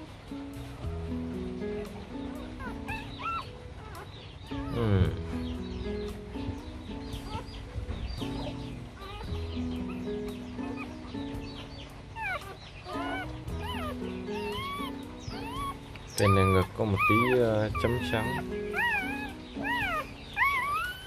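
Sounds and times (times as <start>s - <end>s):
background music: 0.0s - 21.0s
puppies squeaking: 0.0s - 21.0s.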